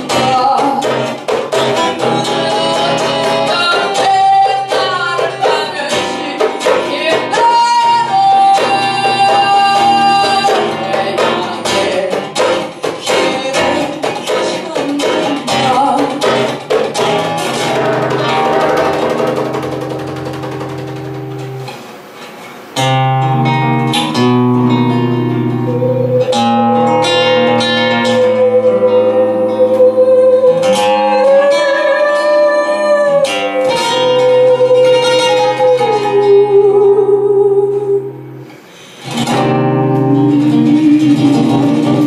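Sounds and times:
acoustic guitar chords: 0.0 - 42.0.

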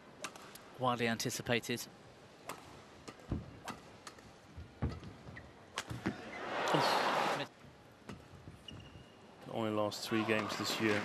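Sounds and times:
crowd cheering: 6.3 - 7.5.

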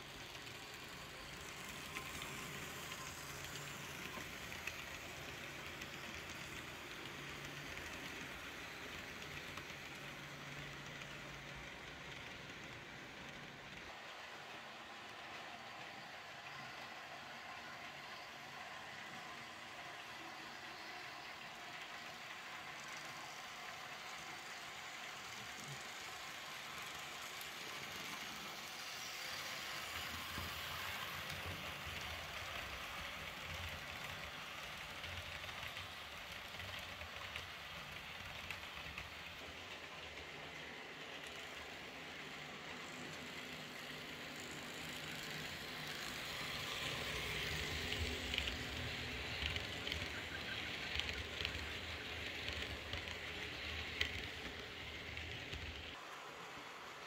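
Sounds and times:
model train wheels clicking on track: 0.0 - 57.0.

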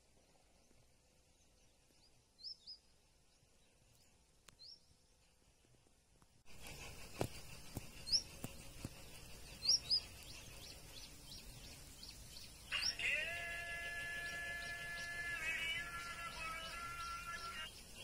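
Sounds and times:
bird chirps: 6.5 - 18.0.

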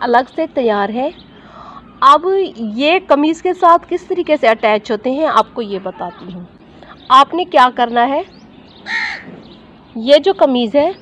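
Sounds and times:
harsh bird call: 8.6 - 10.0.

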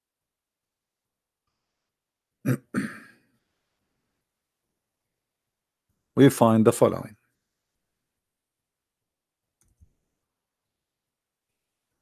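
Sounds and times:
man clearing his throat: 2.4 - 3.2.

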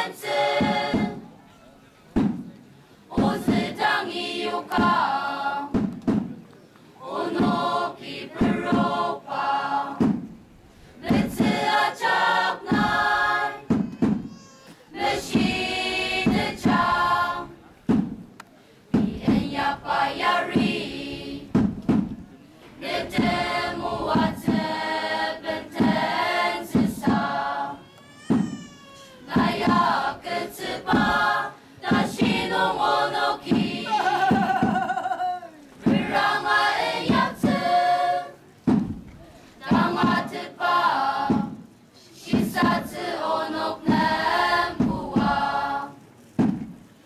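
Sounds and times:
choir singing: 0.0 - 1.3, 3.1 - 5.8, 7.0 - 10.2, 11.0 - 13.8, 14.9 - 17.7, 19.0 - 21.6, 22.8 - 27.8, 29.3 - 34.8, 35.8 - 38.5, 39.6 - 46.0.

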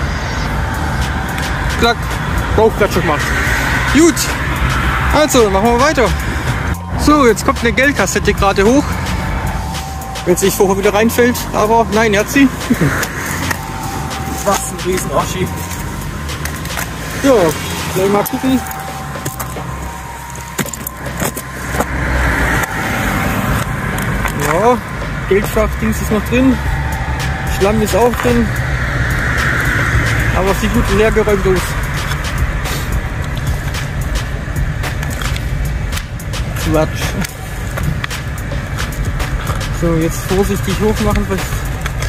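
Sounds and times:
road traffic rumble: 0.0 - 42.0.

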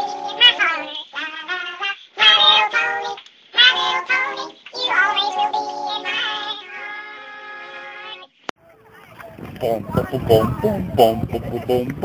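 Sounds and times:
high-pitched sung melody: 0.0 - 8.3, 9.6 - 12.0.

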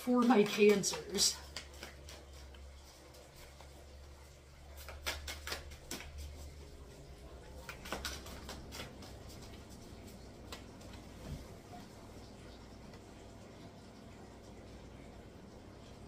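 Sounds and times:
low steady hum: 0.0 - 16.0
cards being shuffled: 0.2 - 3.8, 4.6 - 6.8, 7.5 - 11.1.

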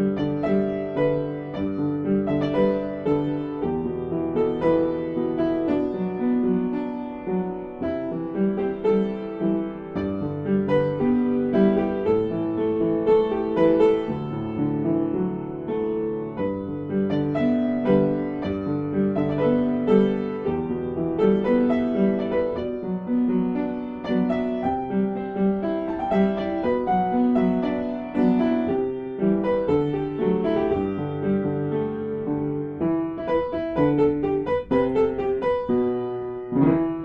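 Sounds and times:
piano music: 0.0 - 37.0.

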